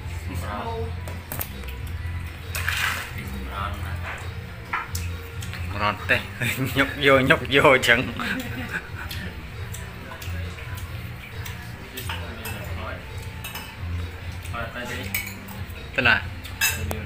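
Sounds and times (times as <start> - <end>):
spoon clinking on a plate: 15.0 - 15.6, 16.5 - 17.0.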